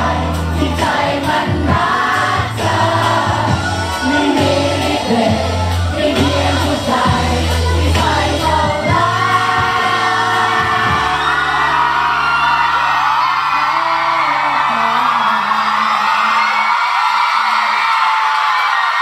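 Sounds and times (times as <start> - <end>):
backing track music: 0.0 - 15.7
fans whooping: 1.8 - 7.7, 8.6 - 19.0
man singing into a microphone: 3.9 - 11.6.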